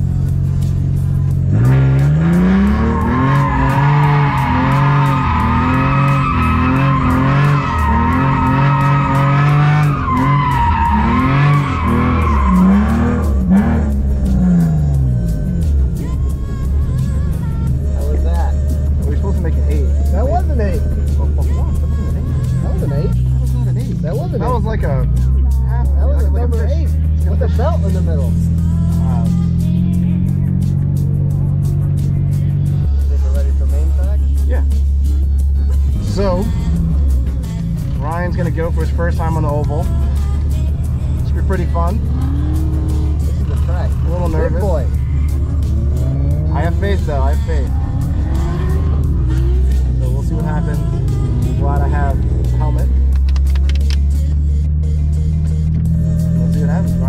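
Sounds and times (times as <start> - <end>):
background music with beat and bass: 0.0 - 57.0
car engine revving: 0.0 - 57.0
tyres squealing: 1.7 - 14.8.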